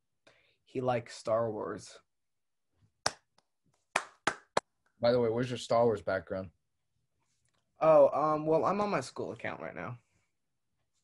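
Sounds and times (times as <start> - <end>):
person clapping hands: 3.0 - 4.6.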